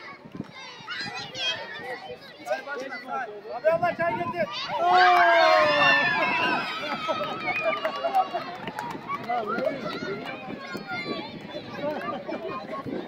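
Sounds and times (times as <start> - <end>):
crowd of children shouting and cheering: 0.0 - 13.0
excited chatter: 0.0 - 13.0.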